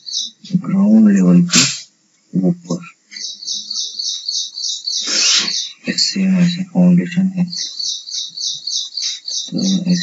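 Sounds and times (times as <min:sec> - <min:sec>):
bird chirping rapidly: 0:00.0 - 0:00.6, 0:03.1 - 0:06.6, 0:07.2 - 0:10.0
brief rush of noise: 0:05.0 - 0:05.5.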